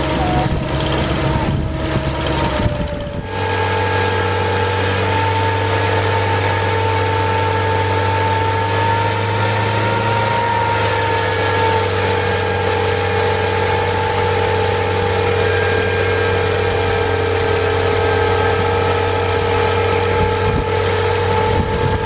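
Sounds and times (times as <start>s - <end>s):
drill rig droning: 0.0s - 22.0s.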